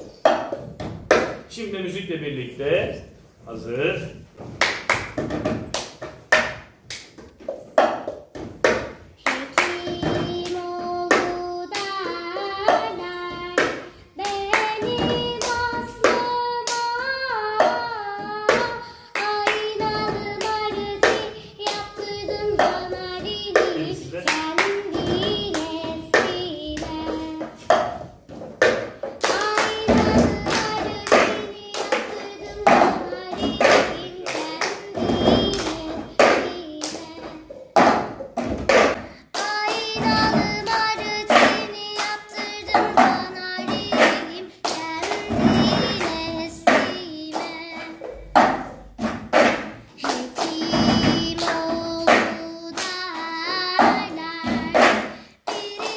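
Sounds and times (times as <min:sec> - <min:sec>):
recorded folk song singing: 0:03.5 - 0:55.9
hand claps: 0:04.5 - 0:28.0, 0:28.6 - 0:55.9.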